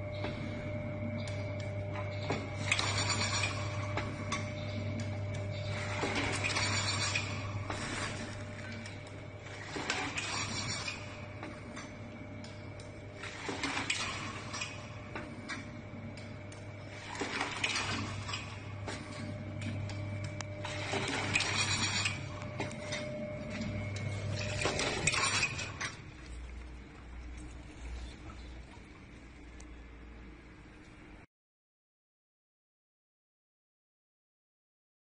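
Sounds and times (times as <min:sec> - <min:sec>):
packing machine humming: 0:00.0 - 0:31.1
machine clattering and clinking: 0:00.2 - 0:27.5.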